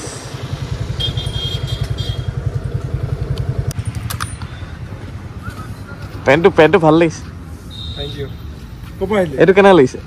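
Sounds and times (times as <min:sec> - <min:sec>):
motorcycle engine puttering: 0:00.4 - 0:05.0.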